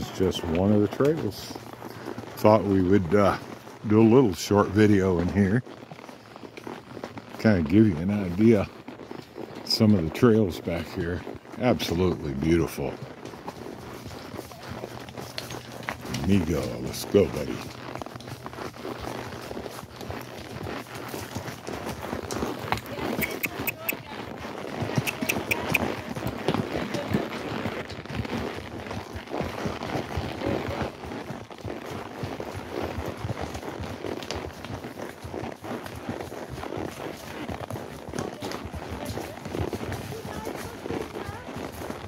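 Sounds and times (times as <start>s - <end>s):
hoofbeats on dry leaves: 0.0s - 42.0s.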